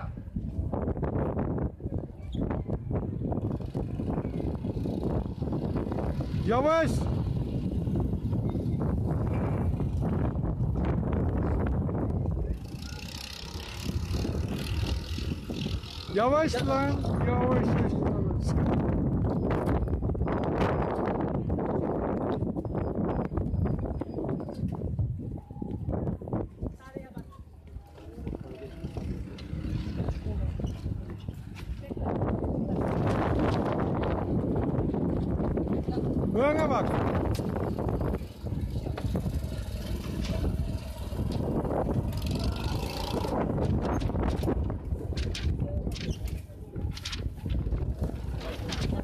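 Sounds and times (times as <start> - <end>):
wind on microphone: 0.0 - 49.0
voices in background: 1.5 - 10.0, 11.4 - 20.2, 25.2 - 49.0
go-kart engines buzzing: 2.3 - 24.7, 27.8 - 45.3, 47.3 - 49.0.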